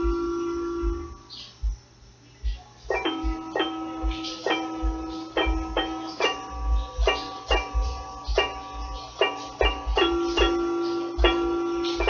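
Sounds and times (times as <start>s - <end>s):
held instrument note ringing: 0.0s - 1.3s, 2.9s - 12.0s
soft low thumps: 0.0s - 12.0s.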